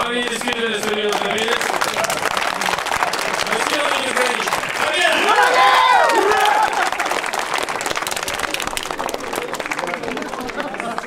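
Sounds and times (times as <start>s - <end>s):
crowd applauding: 0.0s - 11.0s.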